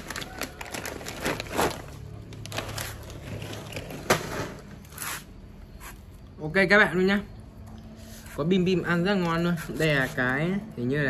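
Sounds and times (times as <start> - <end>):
plastic bag crinkling: 0.0 - 5.2.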